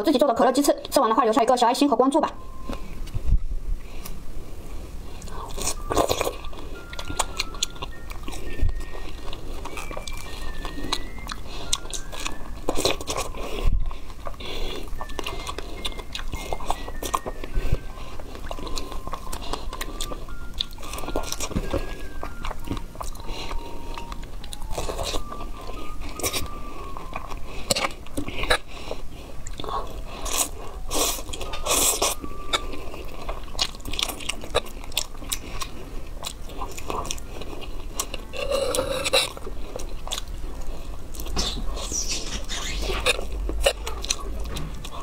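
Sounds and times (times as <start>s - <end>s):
chewing strawberry: 5.0s - 45.0s.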